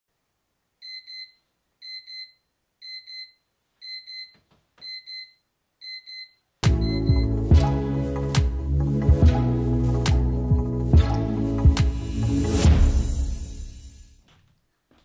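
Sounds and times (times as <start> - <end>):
electronic alarm double beeps: 0.8 - 7.3
loud music: 6.6 - 14.1.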